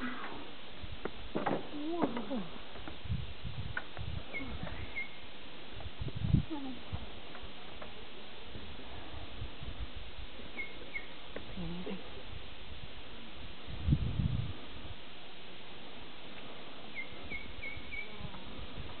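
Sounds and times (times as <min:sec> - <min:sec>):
open-air hiss: 0:00.0 - 0:19.0
small bird chirping: 0:04.3 - 0:05.3, 0:10.5 - 0:11.2, 0:16.9 - 0:18.4.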